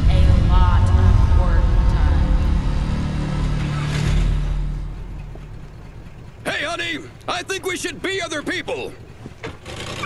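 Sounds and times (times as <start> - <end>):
low car engine rumble: 0.0 - 9.4.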